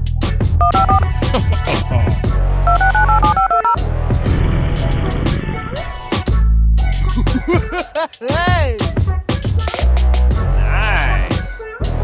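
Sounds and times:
music with heavy bass beat: 0.0 - 12.0
phone keypad beeps: 0.6 - 1.0, 2.7 - 3.8.

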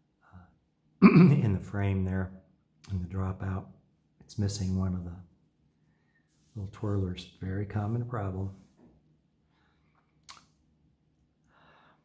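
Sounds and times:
faint breath: 9.4 - 10.1, 11.4 - 12.0
mouth click lip smack: 10.2 - 10.6.

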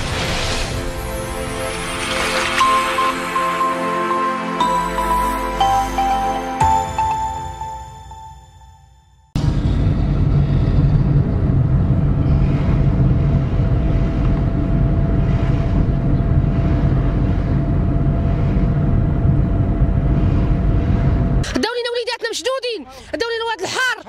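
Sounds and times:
wind rumble on microphone: 9.4 - 21.5
road vehicle noise: 9.4 - 21.6.

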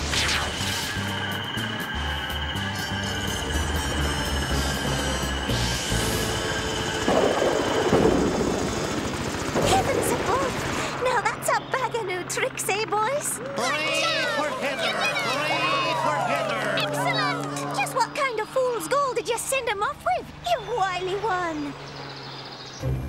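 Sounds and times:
voices: 9.6 - 21.9.

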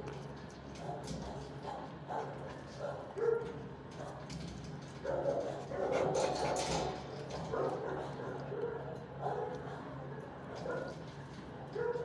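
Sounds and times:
dogs barking: 0.8 - 4.3, 5.0 - 11.0, 11.7 - 12.0.

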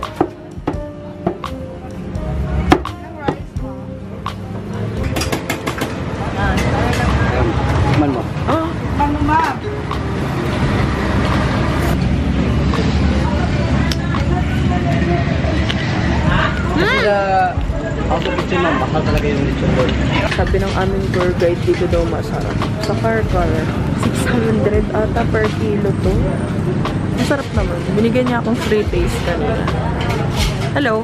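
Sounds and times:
voices talking: 6.0 - 31.0.

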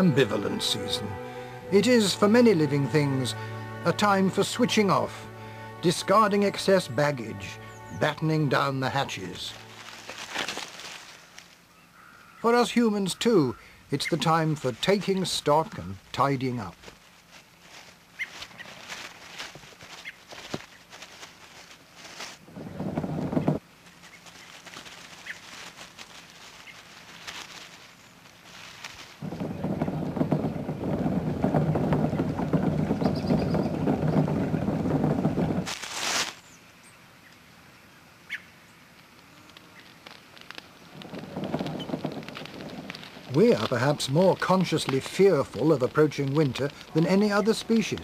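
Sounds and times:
leaves being raked: 0.0 - 11.7, 16.4 - 36.6, 39.1 - 48.0.

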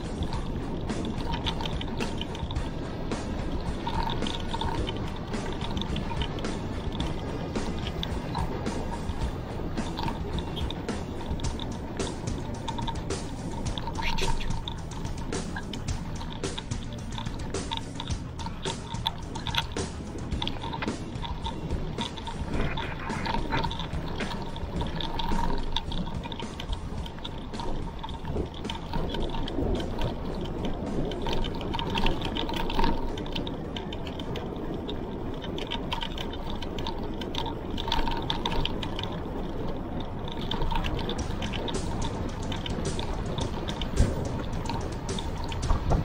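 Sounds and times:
bike clicks and rattles: 0.0 - 46.0
tyre and road noise: 0.0 - 46.0.

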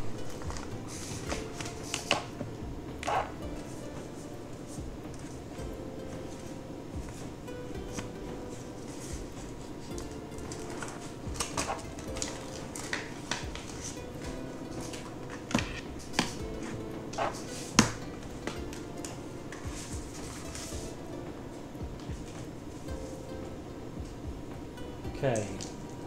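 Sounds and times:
quiet background music: 0.0 - 26.0.

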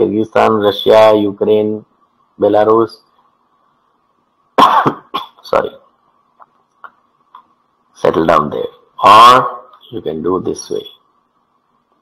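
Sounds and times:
faint steady hum: 0.0 - 12.0
man coughing: 4.6 - 5.4.

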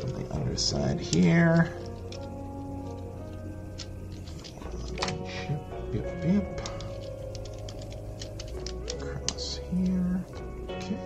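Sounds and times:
background music: 0.0 - 11.0
plastic bricks clicking and rattling: 6.1 - 10.2.

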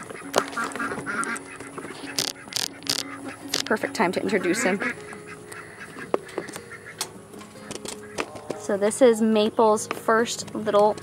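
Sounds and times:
fowl calling: 0.0 - 8.6.

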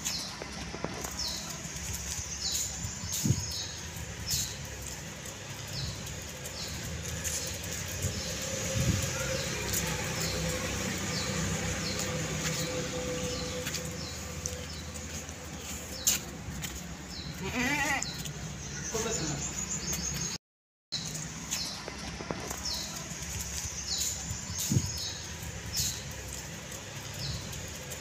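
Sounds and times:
small birds chirping: 0.0 - 20.4, 21.0 - 28.0.

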